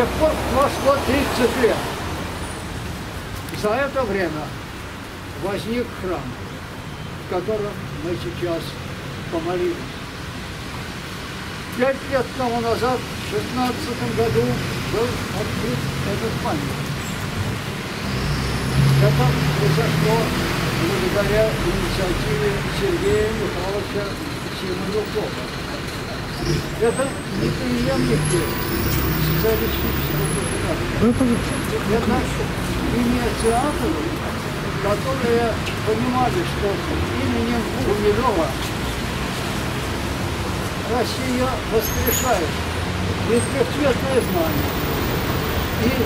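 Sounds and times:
road traffic rushing: 0.0s - 46.0s.

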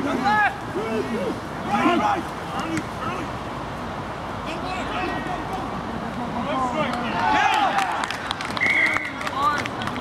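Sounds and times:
players calling out: 4.4s - 9.6s.

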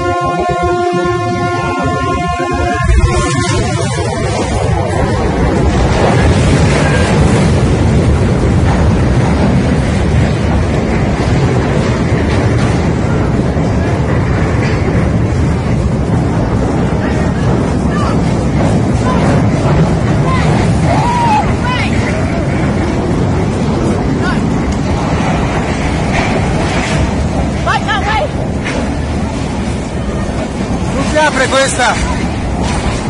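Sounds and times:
loud continuous rumbling: 0.0s - 33.0s
wind buffeting microphone: 0.0s - 33.0s.

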